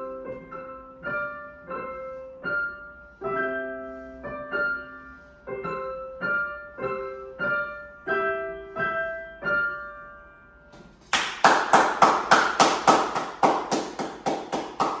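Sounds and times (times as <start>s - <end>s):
two pianos playing: 0.0s - 15.0s
person clapping: 11.0s - 15.0s.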